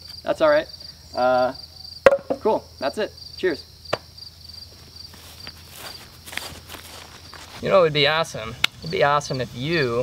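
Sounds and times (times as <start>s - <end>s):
insects chirping: 0.0s - 10.0s
footsteps on grass: 4.5s - 9.5s.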